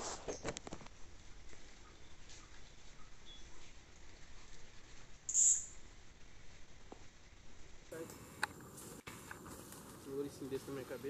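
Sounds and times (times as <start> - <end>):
faint forest background: 0.0 - 11.0
small animal high-pitched squeak: 5.3 - 5.8.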